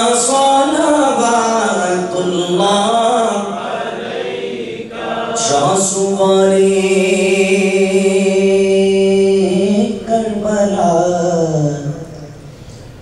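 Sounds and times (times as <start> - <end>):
man chanting: 0.0 - 4.0, 5.3 - 12.5.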